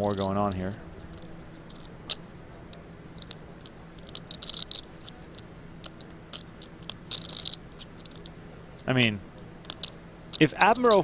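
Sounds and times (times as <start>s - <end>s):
low steady hum: 0.0s - 11.0s
poker chips clicking: 0.0s - 11.0s.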